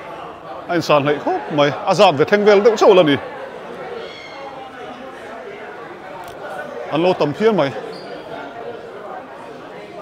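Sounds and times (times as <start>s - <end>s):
murmur of people talking: 0.0s - 10.0s.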